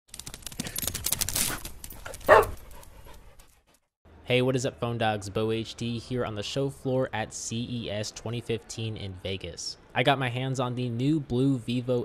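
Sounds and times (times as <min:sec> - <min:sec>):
rapid crackling clicks: 0:00.1 - 0:02.3.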